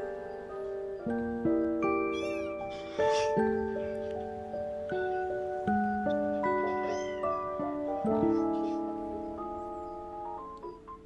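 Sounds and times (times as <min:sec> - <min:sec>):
bell-like mallet music: 0:00.0 - 0:11.0
kitten meowing: 0:02.1 - 0:04.0, 0:06.4 - 0:08.9.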